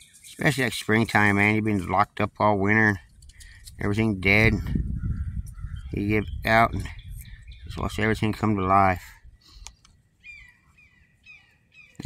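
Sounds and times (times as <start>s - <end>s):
bird chirping: 0.0s - 0.5s, 4.7s - 8.6s, 9.2s - 12.0s.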